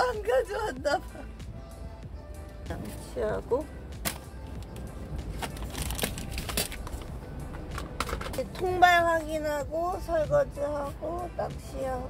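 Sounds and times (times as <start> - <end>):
camping gear clicks and knocks: 4.0 - 8.6.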